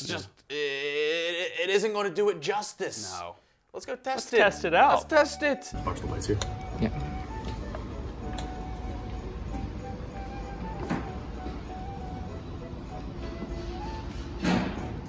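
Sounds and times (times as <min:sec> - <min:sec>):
background music stepping melody: 0:04.4 - 0:15.0.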